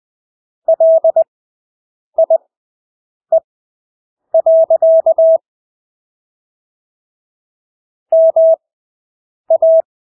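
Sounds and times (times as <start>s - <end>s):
morse code beeps: 4.4s - 5.4s, 8.2s - 8.6s, 9.5s - 9.9s.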